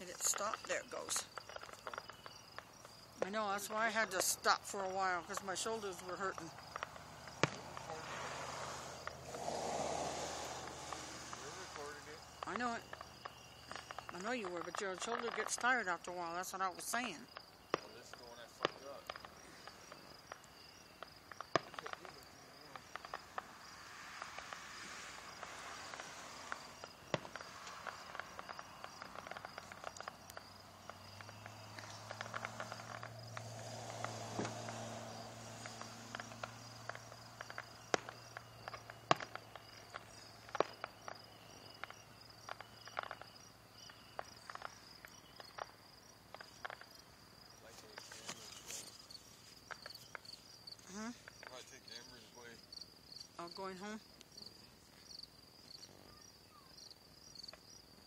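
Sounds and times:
soft hiss: 0:00.0 - 0:16.2, 0:16.8 - 0:52.7
crickets chirping: 0:00.0 - 0:58.0
sharp clicks and pops: 0:25.4 - 0:41.2.

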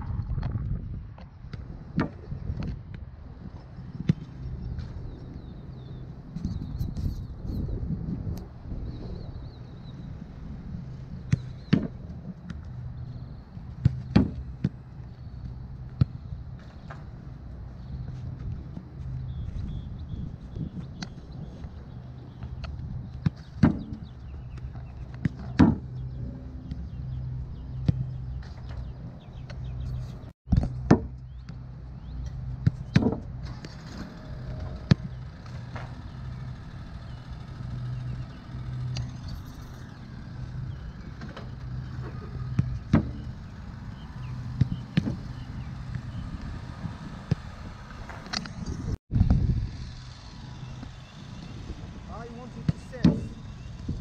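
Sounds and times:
steady low hum: 0:00.0 - 0:54.0
ball thudding against wooden boards: 0:11.3 - 0:12.7, 0:13.7 - 0:15.1, 0:22.5 - 0:26.2, 0:30.5 - 0:31.6, 0:32.5 - 0:33.8, 0:41.2 - 0:43.4, 0:44.4 - 0:45.4, 0:52.7 - 0:53.4.

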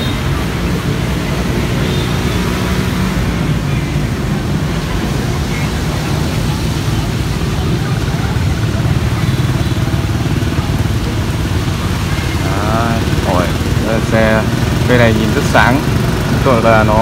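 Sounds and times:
vehicle engine idling: 0:00.0 - 0:17.0.

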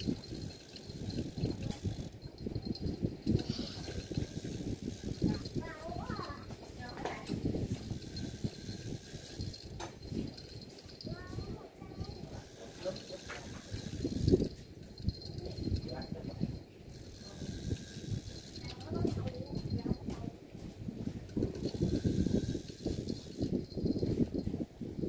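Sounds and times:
fishing reel cranking: 0:00.0 - 0:20.2, 0:21.0 - 0:24.6.

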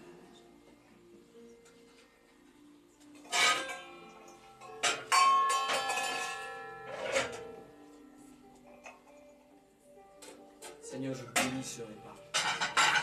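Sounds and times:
metal vessels clinking and ringing: 0:03.0 - 0:08.0, 0:10.6 - 0:13.0.

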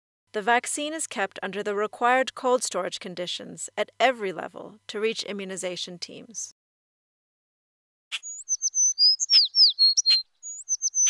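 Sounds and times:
songbird singing: 0:08.2 - 0:11.0.

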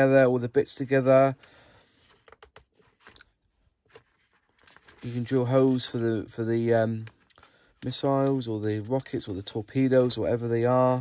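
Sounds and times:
paper sheet crinkling: 0:02.0 - 0:10.8.

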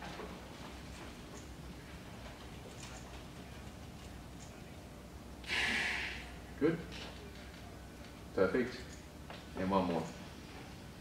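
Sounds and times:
fast inhalation rush of air: 0:05.4 - 0:06.3.

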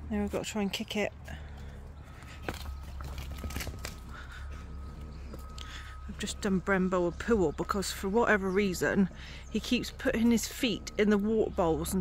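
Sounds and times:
faint steady high tone: 0:01.9 - 0:12.0.

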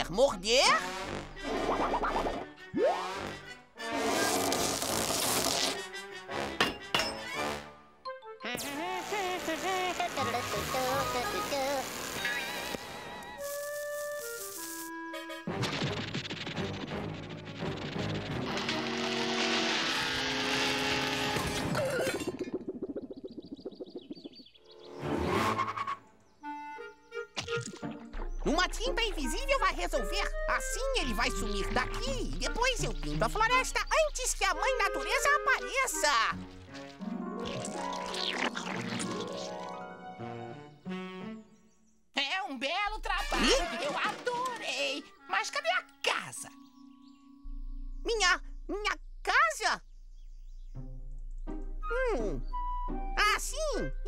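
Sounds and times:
cartoon orchestral music: 0:00.5 - 0:04.2, 0:05.8 - 0:09.1, 0:26.4 - 0:41.7, 0:43.0 - 0:48.4.

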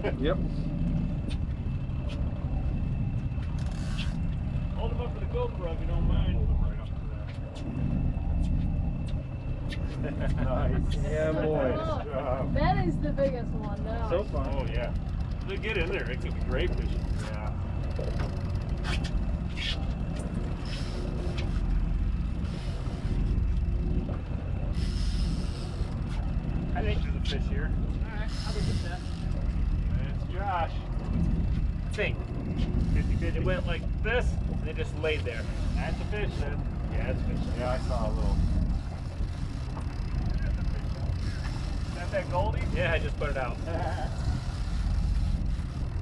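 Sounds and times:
boat engine drone: 0:00.0 - 0:46.0
faint steady hum: 0:00.0 - 0:46.0
wind: 0:00.0 - 0:46.0.

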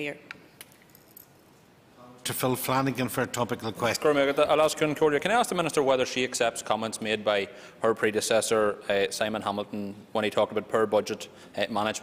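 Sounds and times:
small objects clicking and jingling: 0:00.6 - 0:01.4.

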